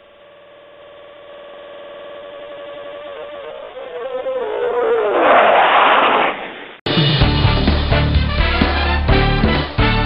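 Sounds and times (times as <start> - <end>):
buzzing electronic tone: 0.0 - 5.1.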